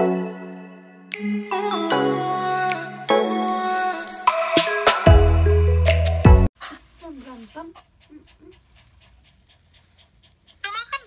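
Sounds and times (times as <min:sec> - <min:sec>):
dog panting quickly: 0:06.6 - 0:11.0.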